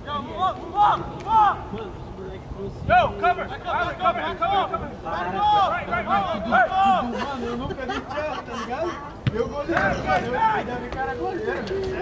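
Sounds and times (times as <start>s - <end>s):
players shouting: 3.0s - 7.2s.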